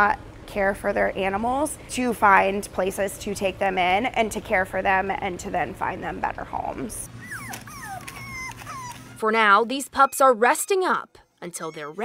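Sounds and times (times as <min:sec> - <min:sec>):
puppies whimpering: 0:07.2 - 0:12.0.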